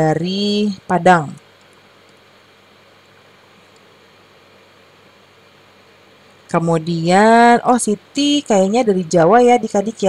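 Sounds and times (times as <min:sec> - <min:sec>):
faint steady hiss: 0:00.0 - 0:10.0
low even hum: 0:00.0 - 0:10.0.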